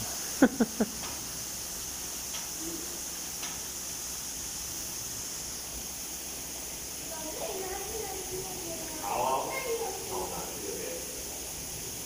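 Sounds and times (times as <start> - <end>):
steady hiss: 0.0 - 12.0.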